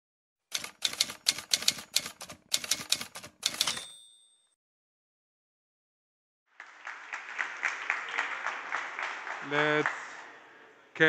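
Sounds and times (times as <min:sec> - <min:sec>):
typewriter keys clattering: 0:00.5 - 0:03.9
typewriter bell ding: 0:00.6 - 0:04.6.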